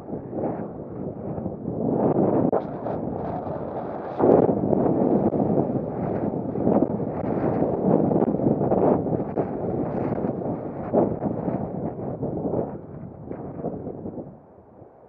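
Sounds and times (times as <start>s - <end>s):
wind buffeting microphone: 0.0s - 14.9s.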